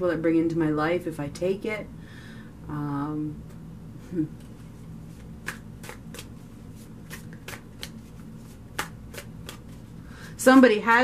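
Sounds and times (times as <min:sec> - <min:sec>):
cards shuffling with crisp snaps: 0:04.4 - 0:10.0.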